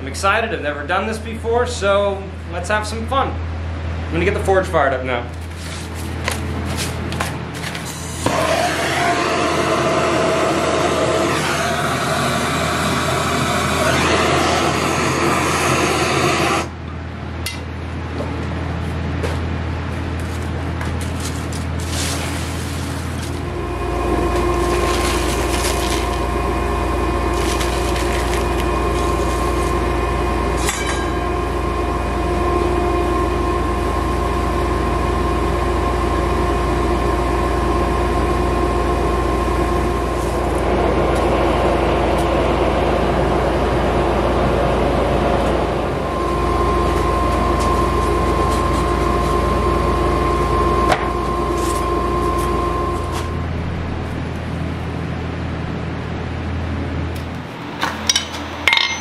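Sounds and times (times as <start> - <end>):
forge air blower humming: 0.0 - 59.0
paper kindling crackling: 5.3 - 8.0, 20.2 - 23.5, 24.2 - 26.5, 27.1 - 29.9.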